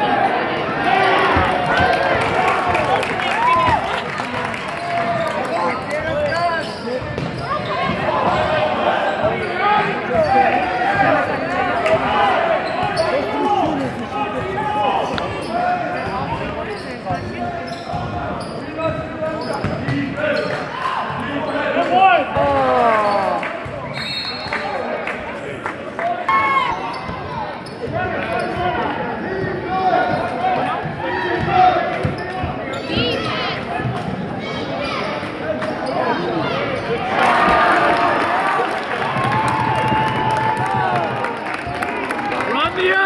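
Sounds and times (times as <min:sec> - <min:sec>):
people shouting and chattering: 0:00.0 - 0:43.0.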